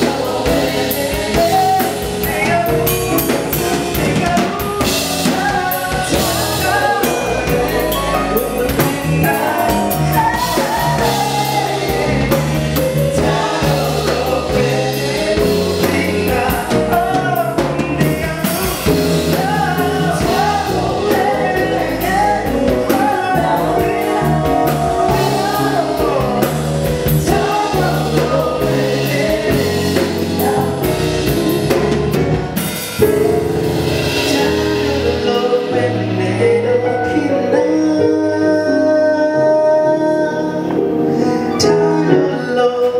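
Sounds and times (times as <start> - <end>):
electric bass guitar: 0.0 - 38.5
drum kit: 0.0 - 39.6
backing vocalists singing: 0.0 - 42.9
male lead singer: 0.0 - 42.9
stage piano: 0.0 - 42.9.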